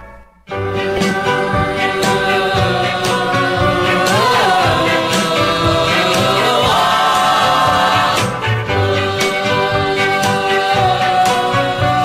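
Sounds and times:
pop band playing: 0.5 - 12.0
vocal group singing in harmony: 0.5 - 12.0.

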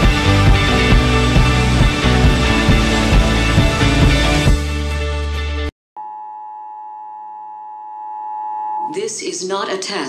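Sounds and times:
closing music: 0.0 - 5.7.

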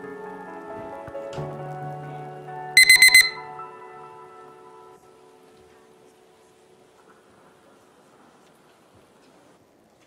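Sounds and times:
soft background music: 0.0 - 8.4
high-pitched timer beeps: 2.8 - 3.5.

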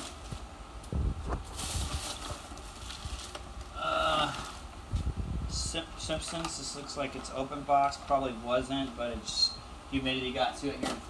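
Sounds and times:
plastic rustling: 0.0 - 5.1.

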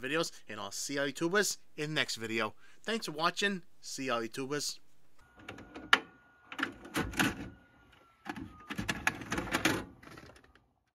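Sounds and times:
video recorder mechanism clacking: 5.2 - 10.6.

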